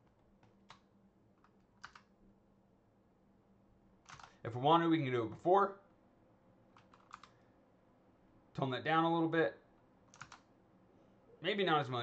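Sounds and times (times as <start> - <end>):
faint keyboard clicks: 0.0 - 2.1, 4.0 - 4.4, 6.7 - 7.4, 10.1 - 10.5.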